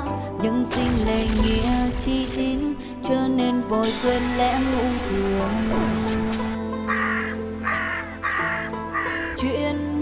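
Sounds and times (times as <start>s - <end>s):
bird's harsh call: 6.9s - 9.4s.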